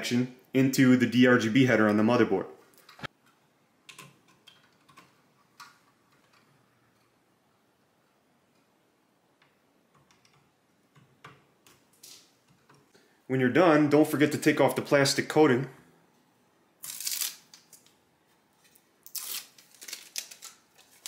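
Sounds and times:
cable rustle: 16.8s - 21.0s.

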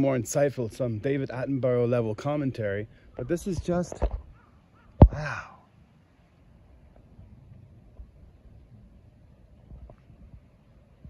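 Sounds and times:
man sighing: 5.0s - 5.7s.

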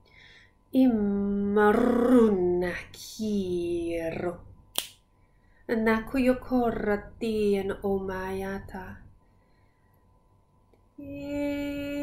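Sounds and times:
woman chanting wordlessly: 0.8s - 4.5s, 5.7s - 9.1s, 11.0s - 12.0s.

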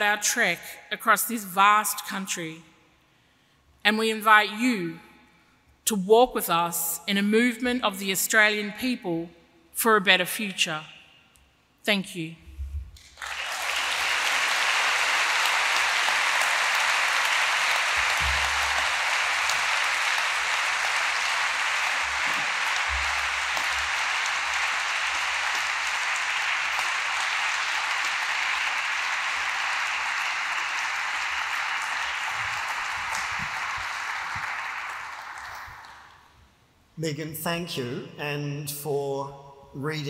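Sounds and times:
audience applauding: 13.0s - 36.3s.

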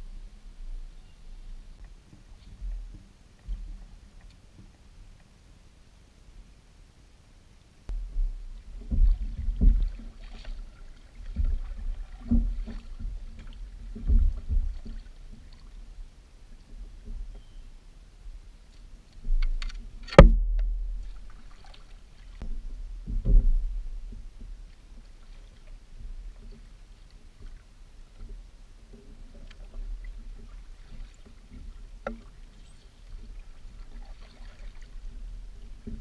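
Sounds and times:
steady low rumble: 0.0s - 25.2s
paddle strokes in water: 1.6s - 5.4s, 7.9s - 20.1s, 20.8s - 36.0s
thuds on plastic hull: 7.9s - 10.6s, 11.2s - 15.1s, 19.3s - 21.1s, 22.4s - 24.5s.

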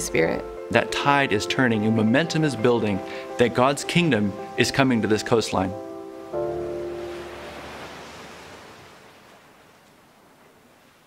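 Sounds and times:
music chord: 0.0s - 8.0s
waves washing onto beach: 1.5s - 11.0s.

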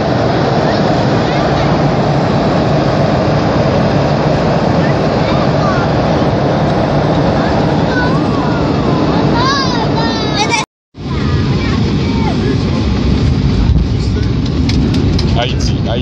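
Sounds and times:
jet engines roaring: 0.0s - 16.0s
rushing air: 0.0s - 16.0s.

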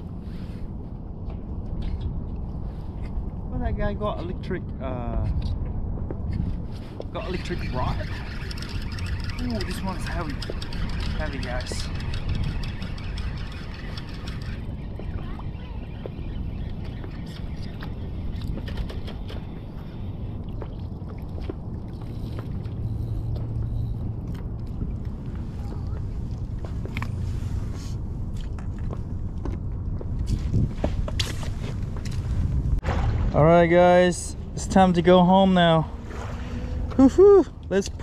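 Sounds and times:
water on a boat: 0.0s - 38.0s
wind rumble: 0.0s - 38.0s.

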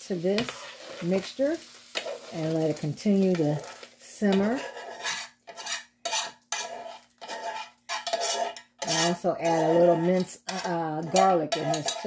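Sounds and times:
spoon scraping metal pot: 0.2s - 12.0s.

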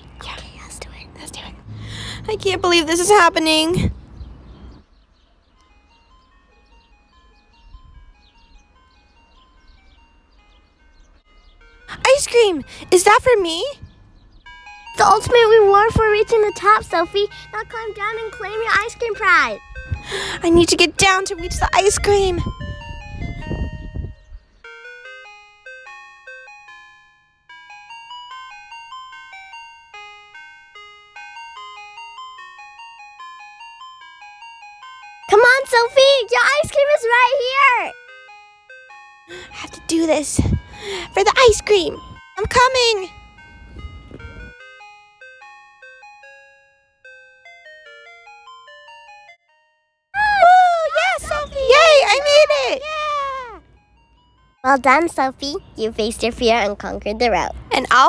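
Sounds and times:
ice cream van jingle: 0.0s - 58.0s.

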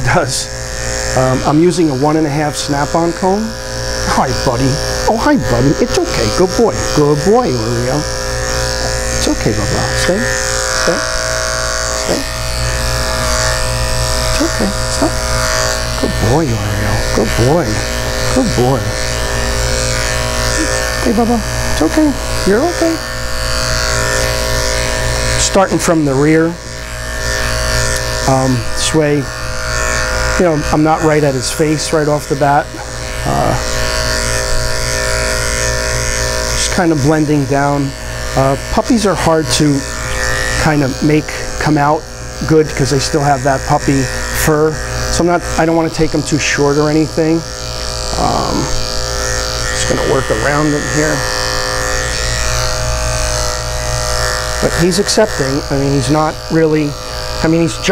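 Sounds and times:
electric dog clipper humming: 0.0s - 57.9s.

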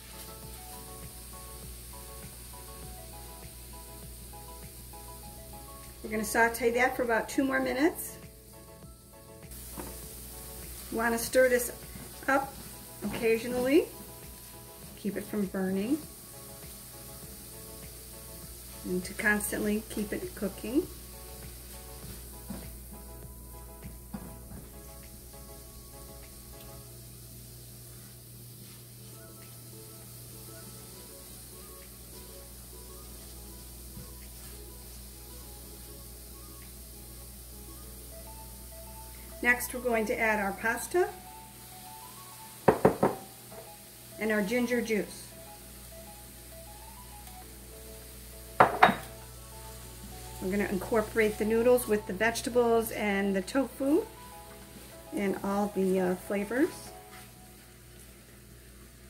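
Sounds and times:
faint background music: 0.0s - 59.0s
vegetables sizzling in a skillet: 0.0s - 59.0s.

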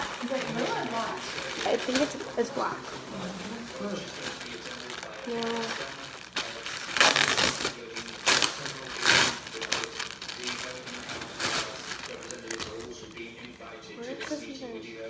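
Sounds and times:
plastic bag crinkling: 0.0s - 14.4s.

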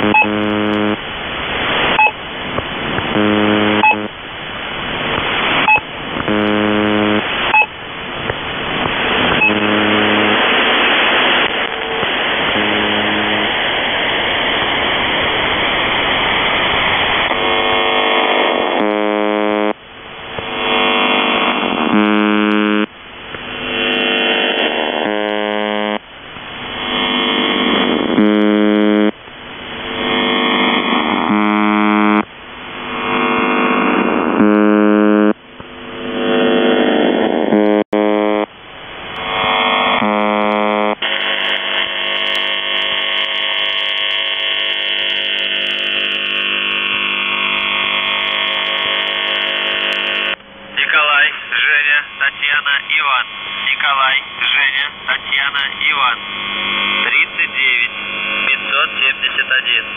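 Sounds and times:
harsh low buzzing tone: 0.0s - 52.2s, 53.2s - 59.9s
radio noise: 0.0s - 59.9s.

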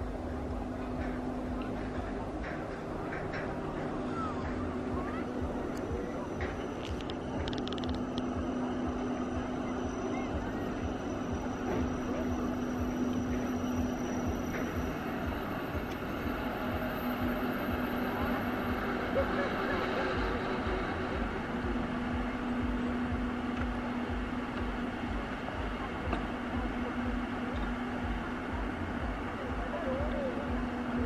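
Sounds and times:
electric train running: 0.0s - 31.0s
faint distant voices: 0.0s - 31.0s.

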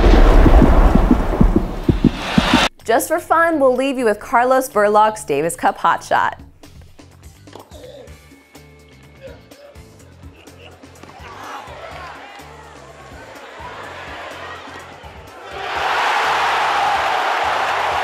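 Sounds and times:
background music: 2.6s - 18.0s
crowd cheering and applause: 11.0s - 18.0s.

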